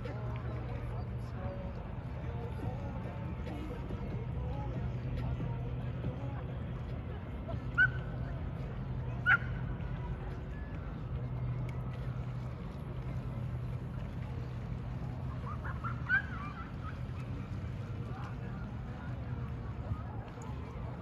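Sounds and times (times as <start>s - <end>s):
low outdoor rumble: 0.0s - 21.0s.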